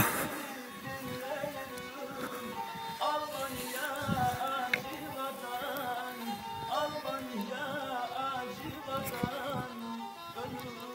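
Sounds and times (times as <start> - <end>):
bowed folk fiddle melody: 0.0 - 10.9.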